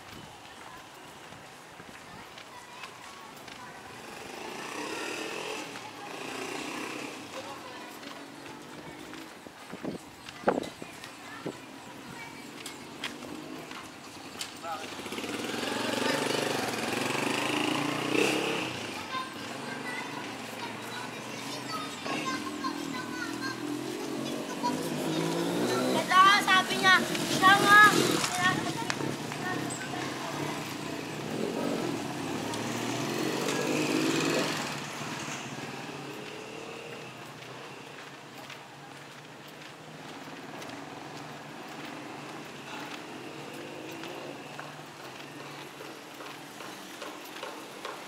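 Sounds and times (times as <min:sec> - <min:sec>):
motorcycle tricycle engine passing: 0:00.3 - 0:48.0.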